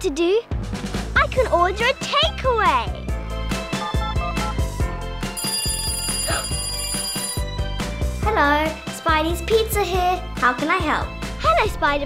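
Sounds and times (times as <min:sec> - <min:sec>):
background music: 0:00.0 - 0:12.0
telephone ringing: 0:03.7 - 0:04.7, 0:05.3 - 0:07.8.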